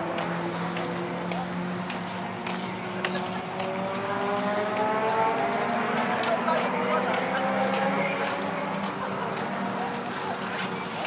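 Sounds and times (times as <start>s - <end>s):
vehicle engine accelerating: 0.0s - 11.0s.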